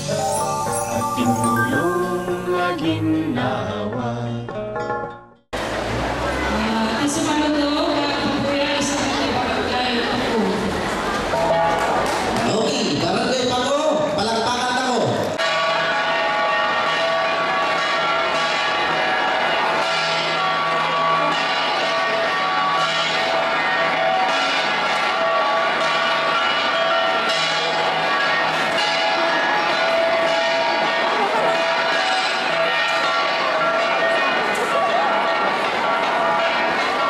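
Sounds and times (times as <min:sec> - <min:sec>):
bronze gong ensemble playing: 0:00.0 - 0:03.2
man speaking over microphone: 0:12.5 - 0:15.3.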